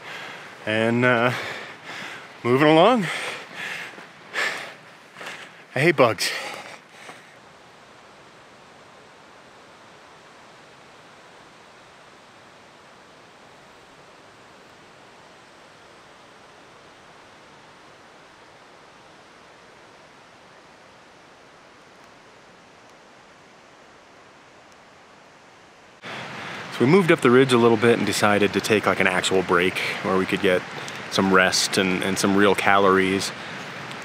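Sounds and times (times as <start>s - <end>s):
distant cascading water rushing: 0.0s - 34.0s.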